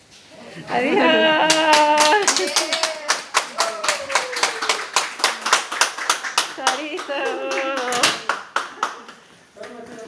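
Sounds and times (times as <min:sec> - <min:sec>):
people applauding: 0:01.2 - 0:10.0.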